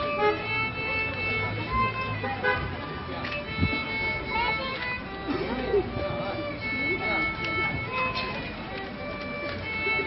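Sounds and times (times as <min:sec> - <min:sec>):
solo violin sustained notes: 0:00.0 - 0:10.0.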